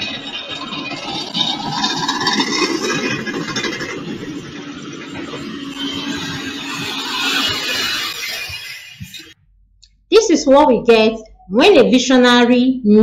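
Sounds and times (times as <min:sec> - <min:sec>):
heavy vehicle engine rumbling: 0:00.0 - 0:09.4
steady hum: 0:00.0 - 0:11.1.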